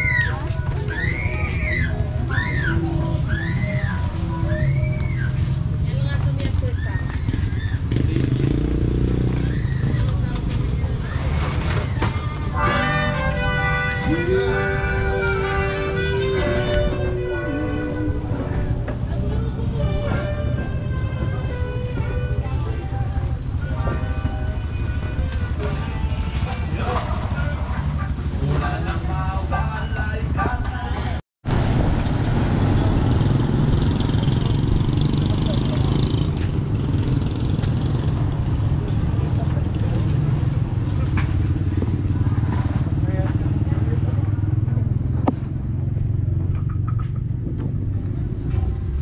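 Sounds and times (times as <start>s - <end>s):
music from a stall: 0.0s - 31.2s
street traffic rumble: 0.0s - 49.0s.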